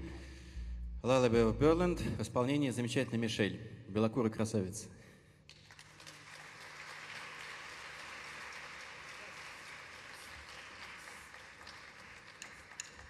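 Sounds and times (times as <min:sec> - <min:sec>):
audience applauding: 0:05.5 - 0:13.0.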